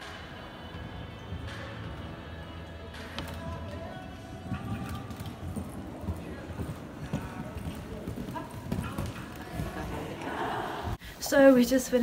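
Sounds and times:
horse hooves cantering on sand: 0:01.0 - 0:10.5.

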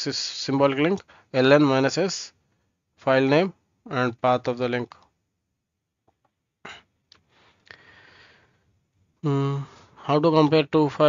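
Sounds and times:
person breathing in: 0:07.3 - 0:08.6.

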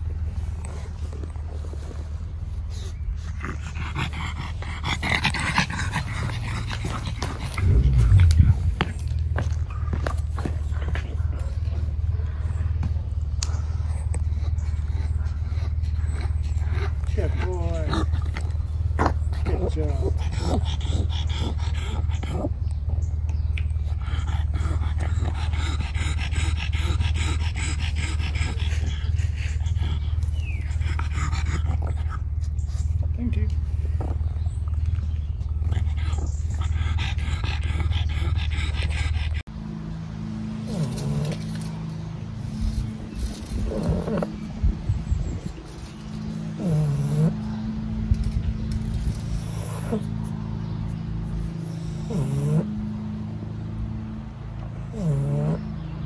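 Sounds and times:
low rumble: 0:00.0 - 0:19.4
dog panting and snuffling: 0:00.0 - 0:39.5, 0:40.7 - 0:52.8
steady low hum: 0:00.0 - 0:56.0.

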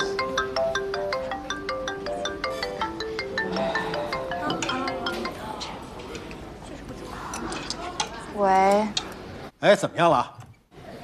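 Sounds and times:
marimba phone ringtone: 0:00.0 - 0:05.6.

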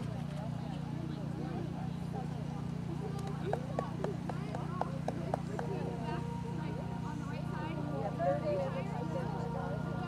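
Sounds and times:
people talking indistinctly: 0:00.4 - 0:10.0.

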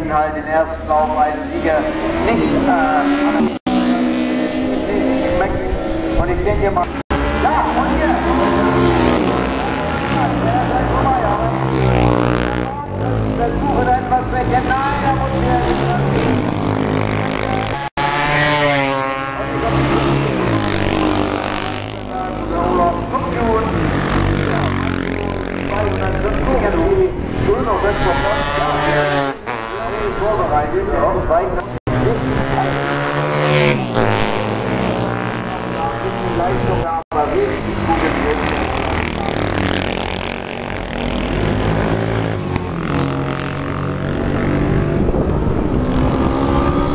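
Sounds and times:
racing motorcycles passing: 0:00.0 - 0:46.9.

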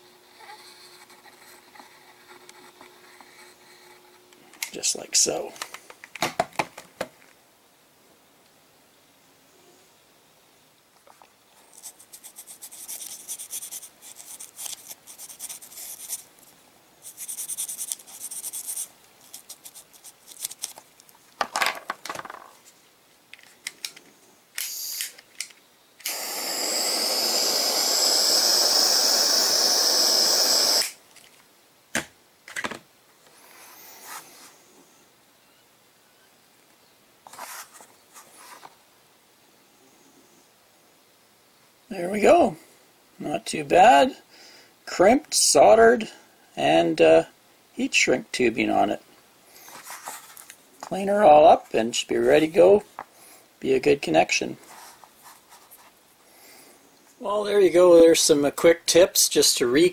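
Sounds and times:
clicks and scraping rustles: 0:17.1 - 0:24.1
torch hissing: 0:24.6 - 0:25.2, 0:26.0 - 0:31.0.

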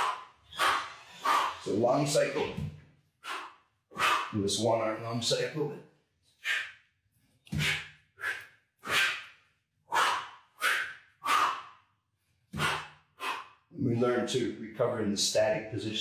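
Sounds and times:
man breathing forcefully: 0:03.2 - 0:04.4, 0:07.5 - 0:11.8, 0:12.6 - 0:13.7.

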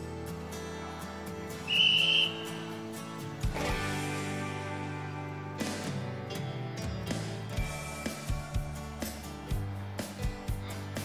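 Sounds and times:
background music: 0:00.0 - 0:11.0
sports whistle blast: 0:01.6 - 0:02.8.

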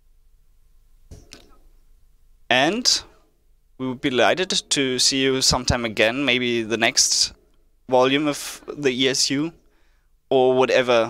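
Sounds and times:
faint steady hum: 0:00.0 - 0:11.0
intake of breath: 0:09.7 - 0:10.2.

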